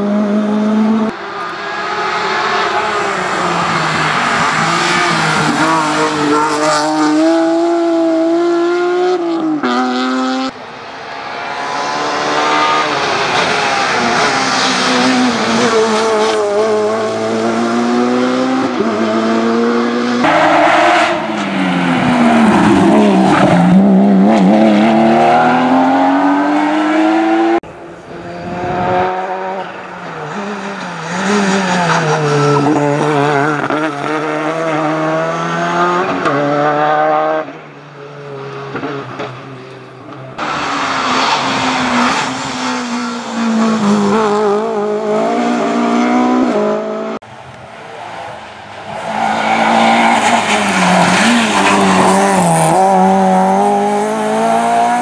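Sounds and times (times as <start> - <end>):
rally cars accelerating past: 0.0 - 55.0.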